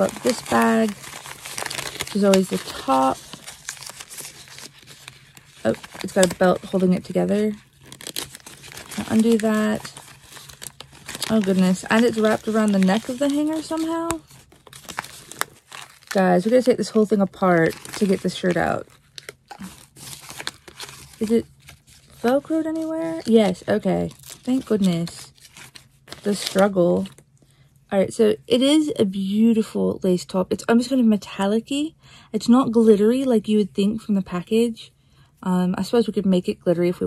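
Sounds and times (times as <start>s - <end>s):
packaging rustling and crinkling: 0.0s - 27.3s.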